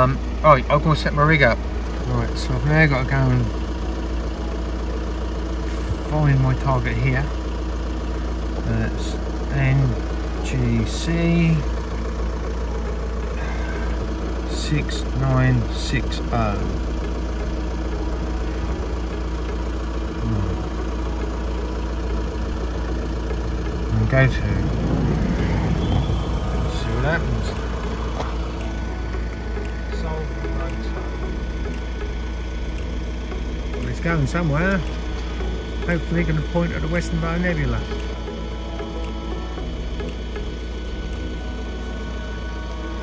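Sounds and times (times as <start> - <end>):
low mechanical hum: 0.0 - 43.0.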